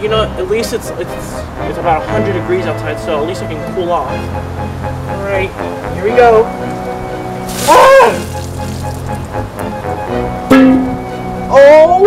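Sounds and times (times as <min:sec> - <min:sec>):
music bed: 0:00.0 - 0:12.0
water splashing: 0:07.3 - 0:09.5
man yelping: 0:07.6 - 0:08.3.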